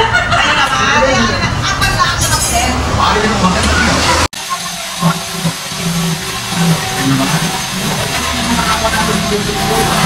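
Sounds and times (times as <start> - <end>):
angle grinder grinding metal: 3.6 - 10.0.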